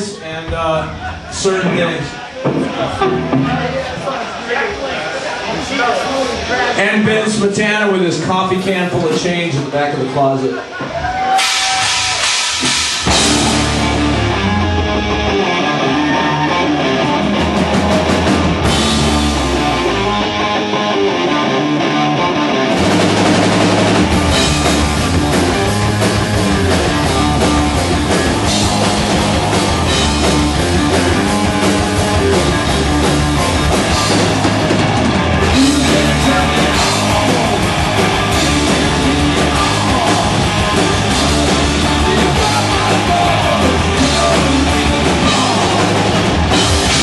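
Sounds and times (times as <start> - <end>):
distorted electric guitar riffing: 0.0 - 4.4, 11.3 - 47.0
drums and cymbals: 10.6 - 14.6, 17.0 - 20.2, 22.7 - 47.0.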